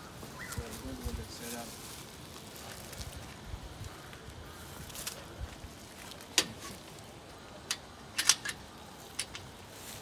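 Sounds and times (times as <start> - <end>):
metal bolt latch clicks: 7.7 - 8.6.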